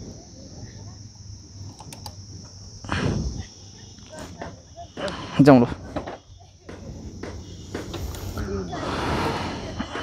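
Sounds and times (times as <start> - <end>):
insects buzzing: 0.0 - 10.0.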